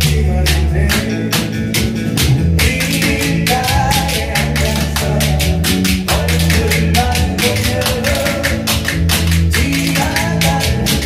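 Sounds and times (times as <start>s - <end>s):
recorded backing music: 0.0s - 11.0s.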